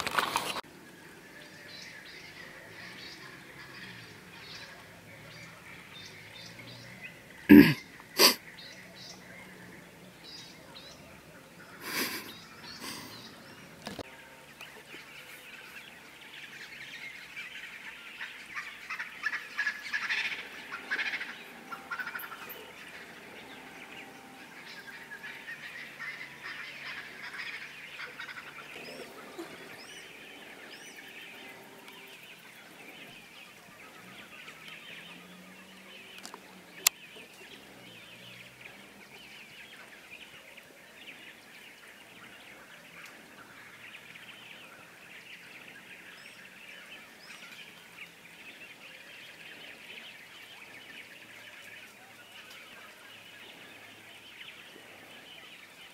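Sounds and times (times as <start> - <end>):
birds calling and chirping: 0.0 - 55.9.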